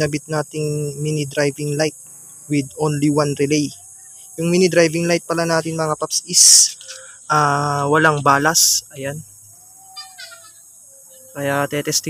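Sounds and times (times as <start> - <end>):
faint steady tone: 0.0 - 12.0.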